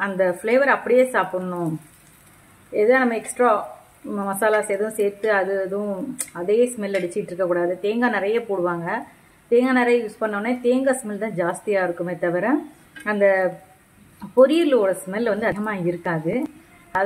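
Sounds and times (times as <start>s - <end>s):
banana slices sizzling in oil: 0.1s - 17.0s
oil ticking and crackling: 0.7s - 5.2s
person talking: 14.2s - 17.0s.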